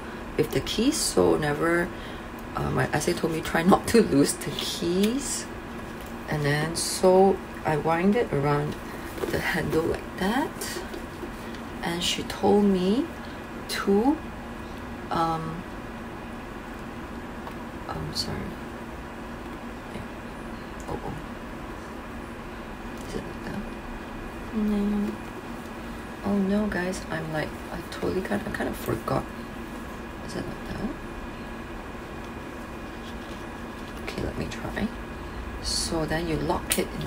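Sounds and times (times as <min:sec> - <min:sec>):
low room hum: 0:00.0 - 0:37.0.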